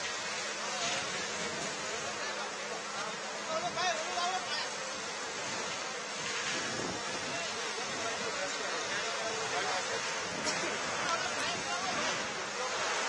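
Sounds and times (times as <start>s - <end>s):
steady hissing: 0.0s - 13.0s
faint distant voices: 0.3s - 13.0s.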